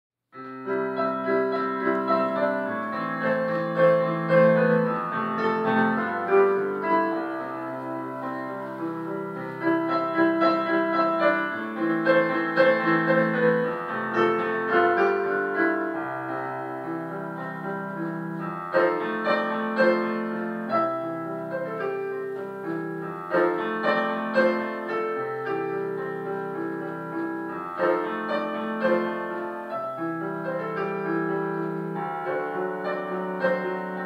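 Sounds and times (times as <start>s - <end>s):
piano chords and melody: 0.3s - 34.0s.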